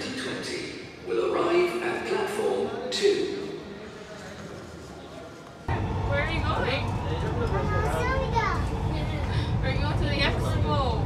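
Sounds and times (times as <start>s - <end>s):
train rumble: 5.6s - 11.0s
children chattering: 6.6s - 9.4s.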